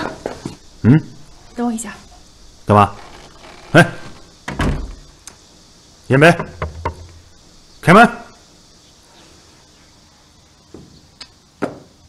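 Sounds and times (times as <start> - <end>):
knocks on wooden door: 6.4 - 7.1.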